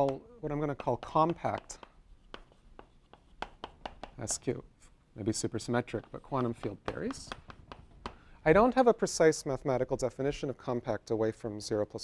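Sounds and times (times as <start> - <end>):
chalk tapping and scratching: 0.0 - 4.5, 5.6 - 8.2.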